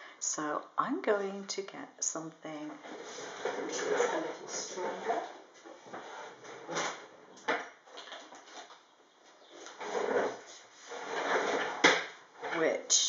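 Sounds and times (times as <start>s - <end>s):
rustling of craft supplies: 2.5s - 12.8s.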